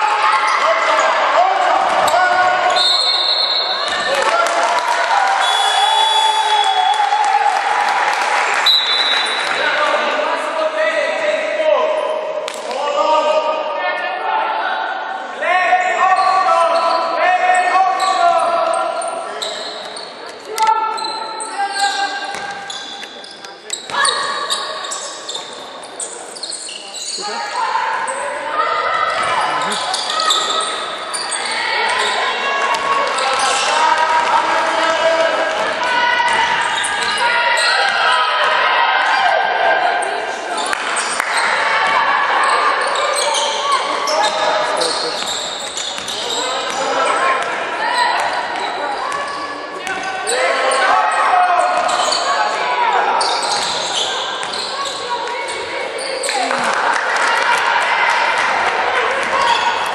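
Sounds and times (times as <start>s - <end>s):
voices calling and shouting: 0.0s - 7.5s, 8.6s - 59.9s.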